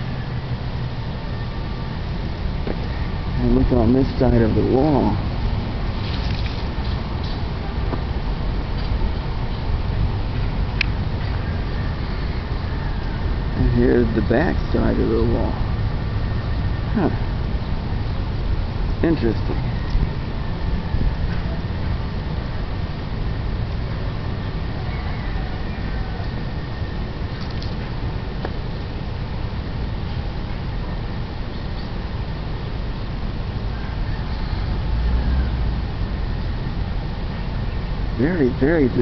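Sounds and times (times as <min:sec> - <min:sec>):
low outdoor rumble: 0:00.0 - 0:39.0.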